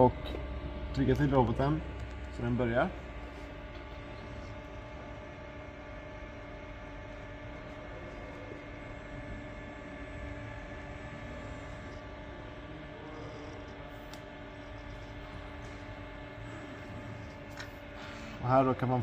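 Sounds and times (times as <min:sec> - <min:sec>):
steady hum with fixed tones: 0:00.0 - 0:19.0.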